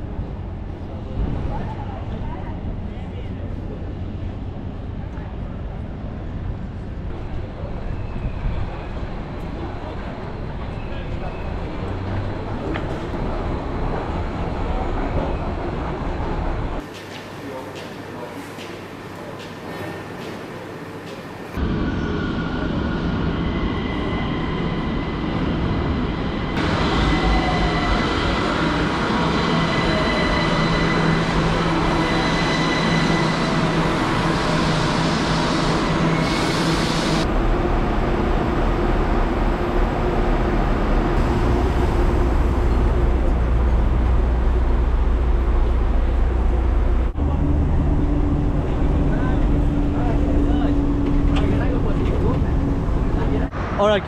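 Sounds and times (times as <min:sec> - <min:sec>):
road noise: 0:00.0 - 0:16.9, 0:21.5 - 0:54.0
metro train rumble and whine: 0:00.0 - 0:54.0
bus engine drone: 0:37.0 - 0:53.8.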